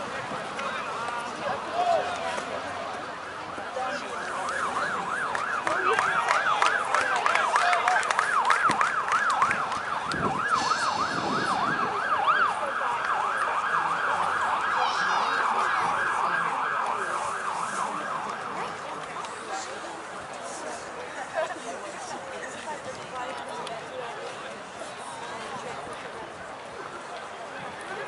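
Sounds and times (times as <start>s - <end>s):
siren yelping: 3.2s - 18.6s.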